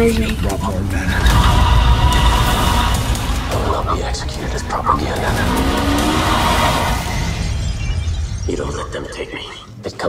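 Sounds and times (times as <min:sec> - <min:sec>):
tyres skidding: 0:01.0 - 0:07.7
engine note gliding up: 0:01.2 - 0:07.9.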